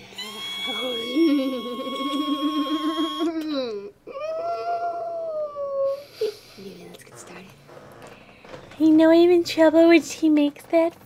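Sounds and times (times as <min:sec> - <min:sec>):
girl's high-pitched whine: 0:00.0 - 0:06.3.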